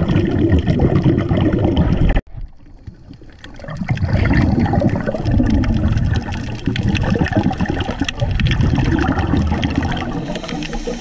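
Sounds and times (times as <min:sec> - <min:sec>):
underwater water rushing with crackles: 0:00.0 - 0:11.0.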